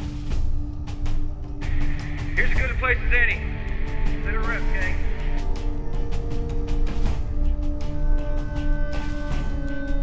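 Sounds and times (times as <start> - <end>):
film score music: 0.0 - 10.0
radio-filtered voice: 1.9 - 5.4.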